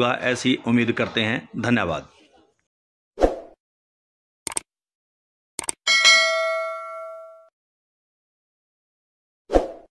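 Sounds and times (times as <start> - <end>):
bell-like notification ding: 5.9 - 7.5.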